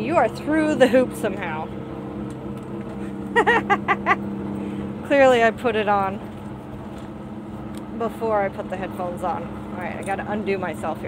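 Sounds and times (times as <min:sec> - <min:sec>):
truck engine hum: 0:00.0 - 0:11.0
woman laughing: 0:03.0 - 0:04.2.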